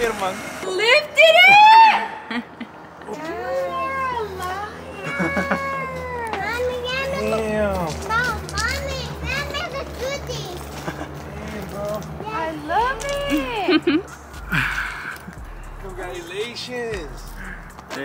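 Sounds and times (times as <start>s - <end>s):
people squealing excitedly: 1.2s - 2.2s
steady low hum: 14.2s - 17.8s.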